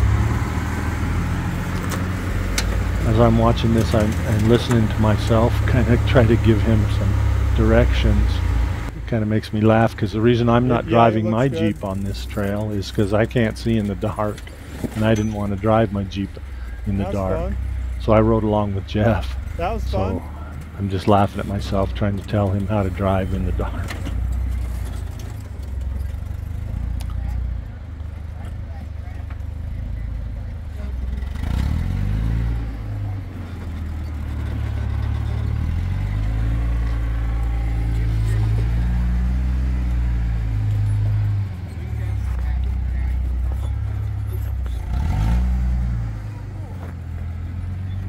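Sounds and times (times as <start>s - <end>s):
jeep engine running at low revs: 0.0s - 48.0s.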